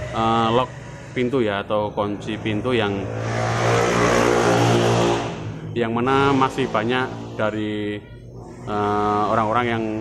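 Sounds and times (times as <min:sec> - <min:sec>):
vehicle engine revving: 0:00.0 - 0:09.5.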